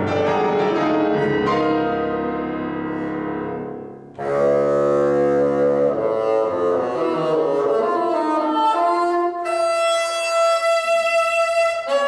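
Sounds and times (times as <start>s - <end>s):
piano accompaniment: 0.0s - 10.6s
bassoon: 2.9s - 12.0s.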